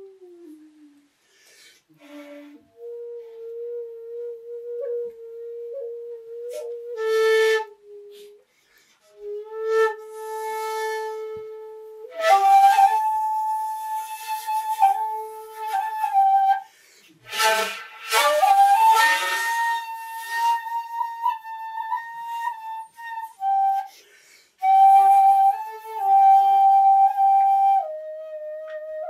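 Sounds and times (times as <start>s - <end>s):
bamboo flute playing: 0.0s - 1.2s, 1.9s - 29.0s.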